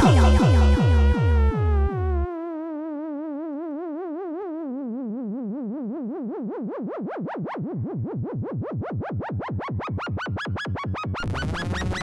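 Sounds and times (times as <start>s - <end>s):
wobbling synth tone: 0.0s - 2.3s.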